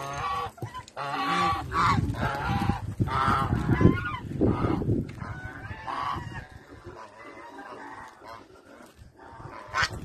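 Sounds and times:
geese honking: 0.0s - 10.0s.

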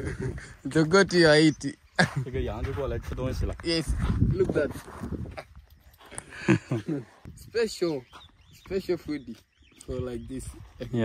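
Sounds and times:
man laughing: 0.0s - 0.8s, 1.9s - 2.5s, 6.3s - 7.2s.

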